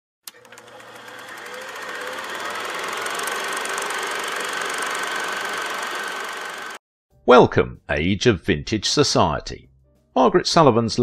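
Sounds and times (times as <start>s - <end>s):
film projector clattering: 0.3s - 6.8s.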